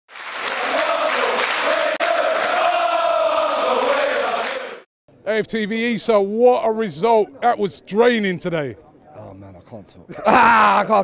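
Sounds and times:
stadium crowd chanting: 0.1s - 4.9s.

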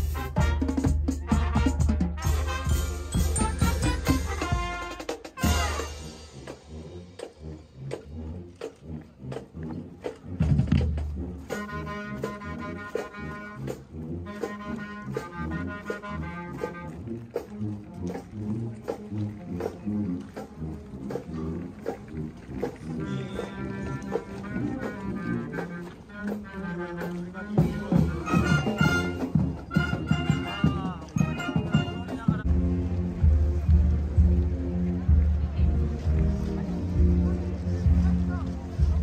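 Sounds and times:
marching band playing: 0.0s - 39.0s
flutes carrying the tune: 11.2s - 39.0s.

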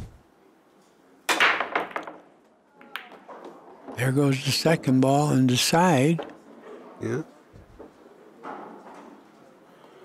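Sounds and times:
cue ball cracking into racked balls: 1.3s - 4.0s
pool balls clattering: 1.3s - 6.8s.

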